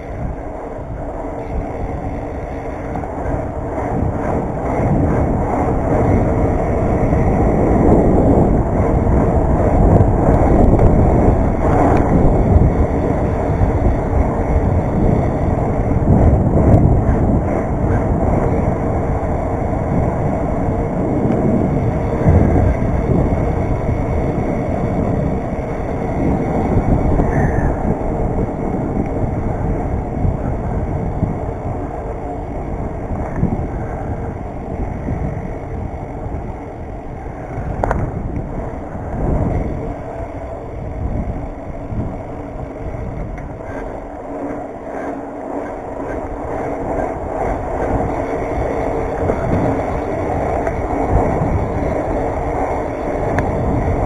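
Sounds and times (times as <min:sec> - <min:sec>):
bike tyre rumble on road: 0:00.0 - 0:54.0
wind rushing over microphone: 0:00.0 - 0:54.0.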